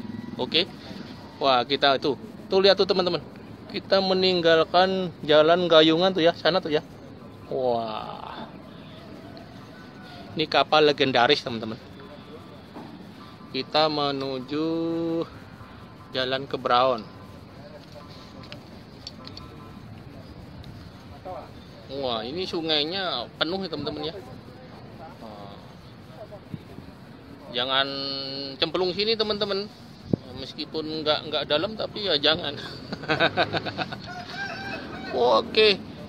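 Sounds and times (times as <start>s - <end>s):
rooster crowing: 0.0s - 2.1s, 8.3s - 10.7s, 33.4s - 35.8s
faint voices: 0.0s - 36.0s.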